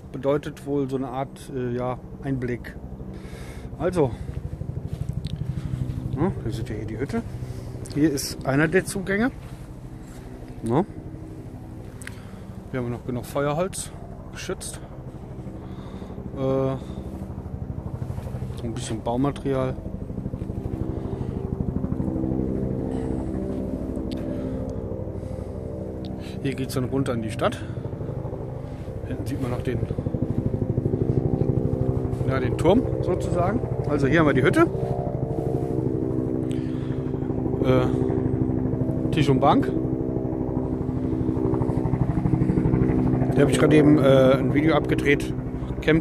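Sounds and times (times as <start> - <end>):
engine running: 0.0 - 46.0.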